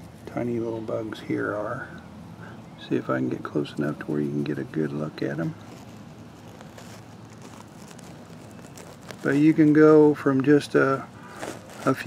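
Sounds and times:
faint rustles: 0.0 - 12.0
low steady background noise: 0.0 - 12.0.

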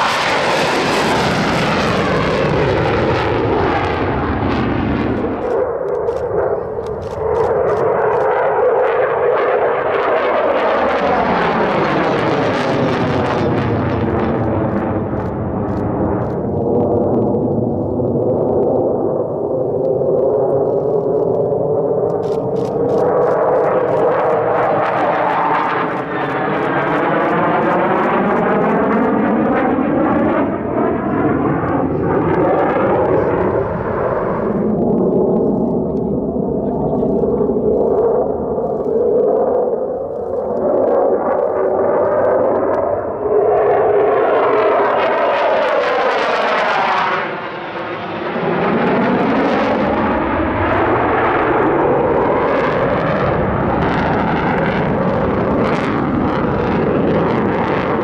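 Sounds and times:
fighter jet flying overhead: 0.0 - 58.0.

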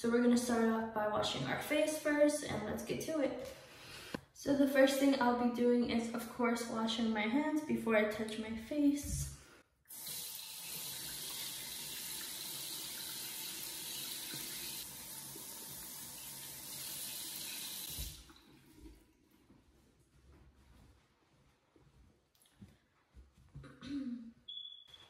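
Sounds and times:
water running from sink tap: 9.9 - 18.3.

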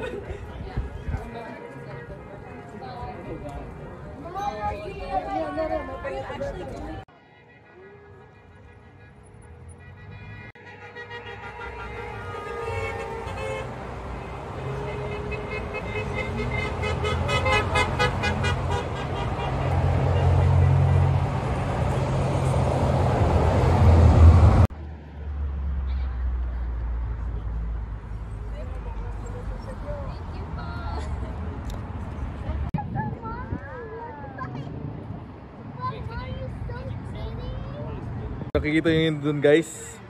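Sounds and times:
cars driving past: 8.2 - 40.0.

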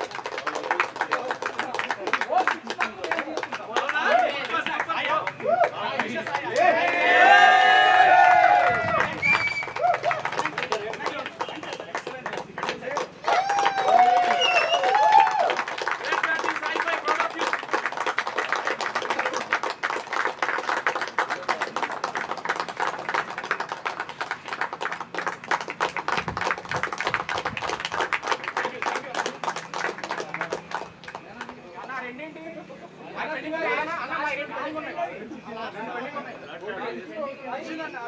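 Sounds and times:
group clapping: 0.0 - 32.1.

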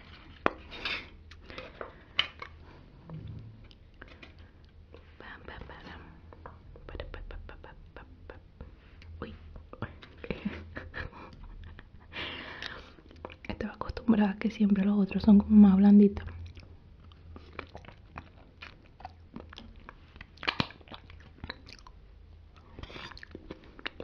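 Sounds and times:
wet mouth eating sounds: 12.6 - 13.5, 16.2 - 24.0.

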